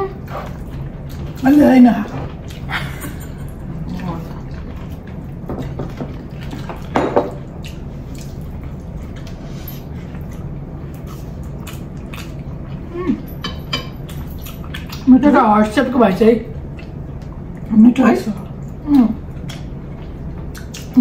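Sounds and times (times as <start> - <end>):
steady low hum: 0.0 - 21.0
wet chewing: 0.2 - 12.9, 14.0 - 15.1, 16.6 - 17.7, 18.4 - 21.0.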